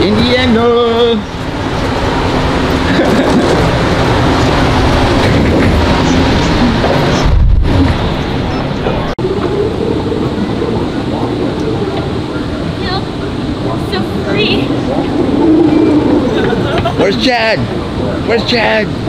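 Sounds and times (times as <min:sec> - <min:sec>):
continuous rush of noise: 0:00.0 - 0:19.0
indistinct crowd voices: 0:01.3 - 0:19.0.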